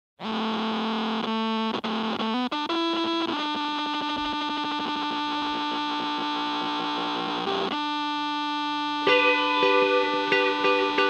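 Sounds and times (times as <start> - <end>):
distorted electric guitar: 0.2 - 11.0.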